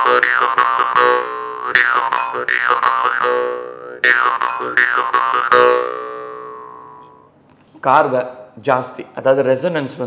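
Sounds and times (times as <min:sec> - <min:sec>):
jaw harp twanging: 0:00.0 - 0:07.2.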